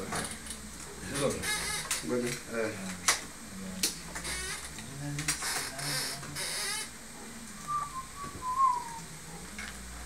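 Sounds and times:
person whistling: 7.7 - 9.0.

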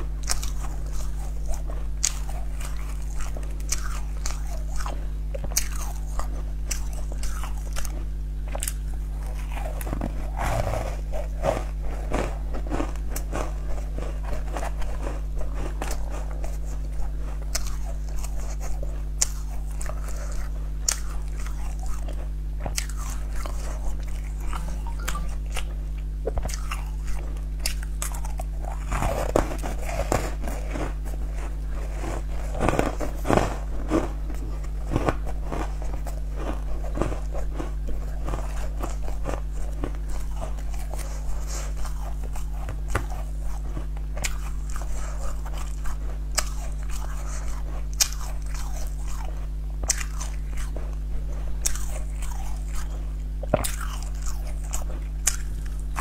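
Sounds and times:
low hum: 0.0 - 56.0
person chewing food: 0.0 - 56.0.

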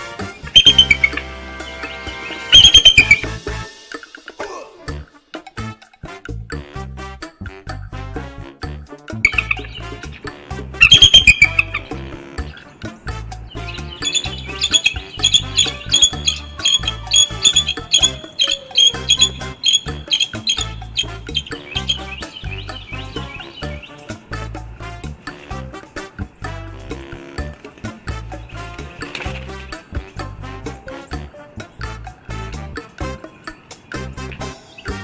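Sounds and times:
eagles chittering calls: 0.0 - 3.6, 9.2 - 35.0
background music with beat: 0.0 - 35.0.

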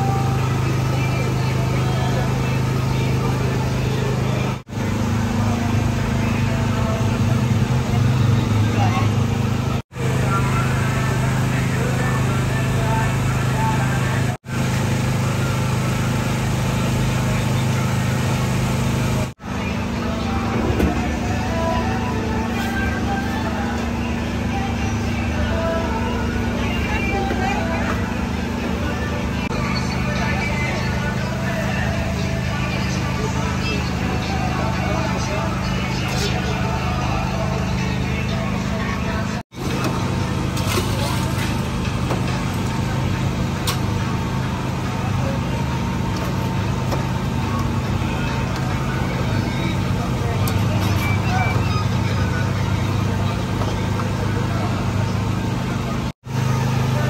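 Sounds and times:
background voices: 16.5 - 57.0.

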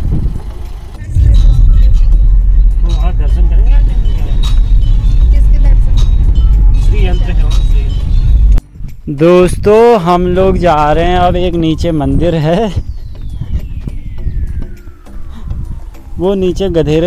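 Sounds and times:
car cabin rumble: 0.0 - 8.6.

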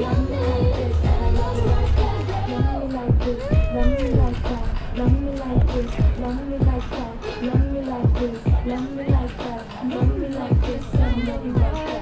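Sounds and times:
pop dance track over loudspeaker: 0.0 - 12.0.

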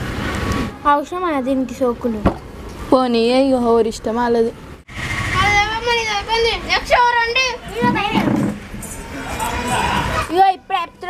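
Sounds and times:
children talking: 0.6 - 11.0.

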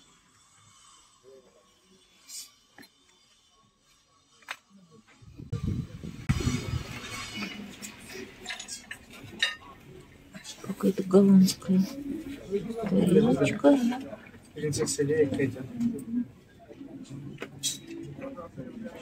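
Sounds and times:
ceramic plates and cups clinking: 7.1 - 10.1.

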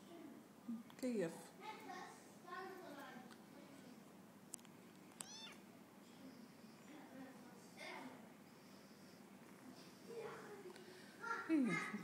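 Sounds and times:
kitten meowing: 5.2 - 5.6.

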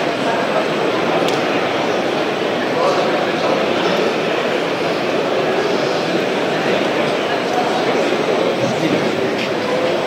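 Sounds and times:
din of crowded hall: 0.0 - 10.0.

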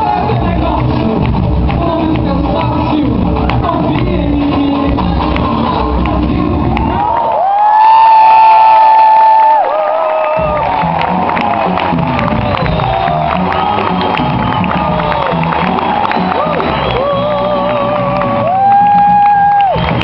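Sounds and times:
samba music: 0.0 - 7.2, 10.3 - 20.0
crowd cheering and whooping: 6.6 - 20.0.

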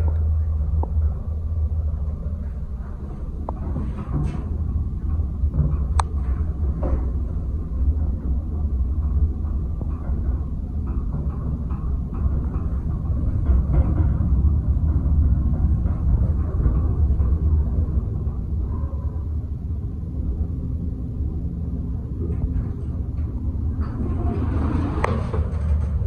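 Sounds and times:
elevator car rumbling: 0.0 - 26.0
elevator doors opening: 0.0 - 26.0.

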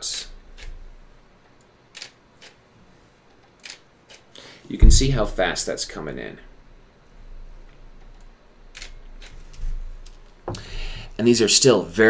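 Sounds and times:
camera shutter clicks: 8.7 - 9.4.

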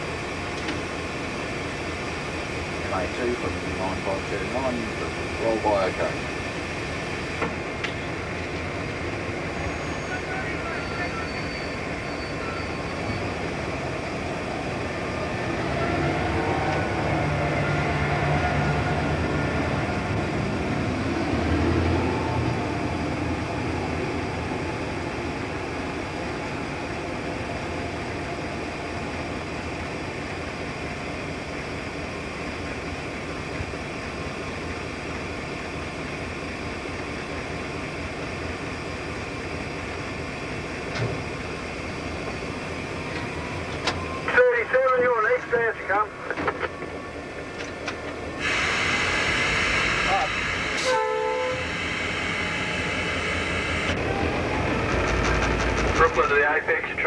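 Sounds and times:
locomotive engine running: 0.0 - 57.0.

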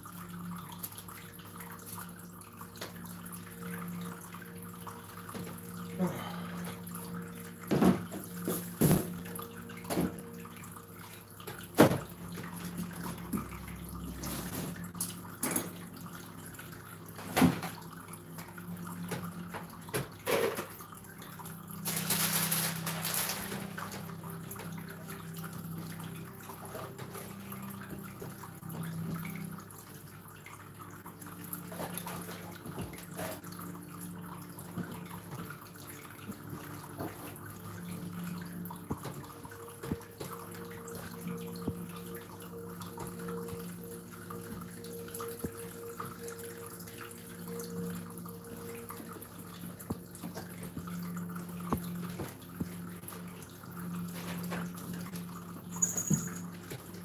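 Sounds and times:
low electrical hum: 0.0 - 57.0.

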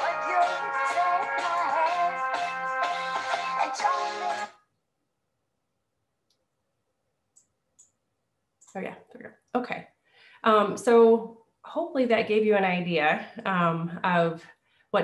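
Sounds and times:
pop song with woman singing: 0.0 - 4.6
woman speaking: 8.7 - 15.0.

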